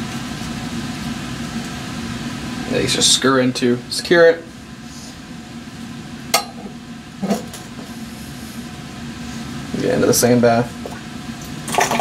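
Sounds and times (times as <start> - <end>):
ventilation hum: 0.0 - 12.0.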